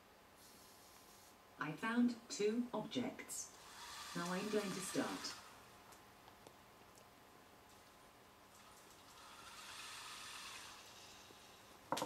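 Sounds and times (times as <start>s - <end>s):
robotic arm motors whirring: 3.6s - 5.5s.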